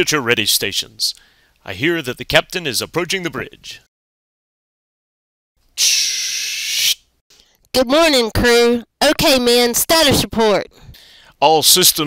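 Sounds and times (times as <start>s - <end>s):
pneumatic door hiss: 5.8s - 7.0s.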